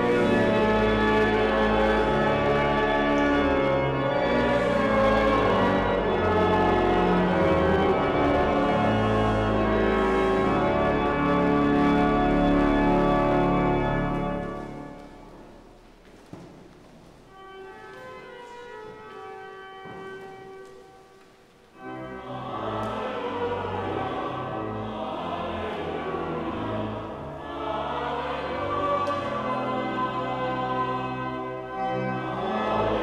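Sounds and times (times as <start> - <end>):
pipe organ playing chords: 0.0 - 16.0, 17.1 - 33.0.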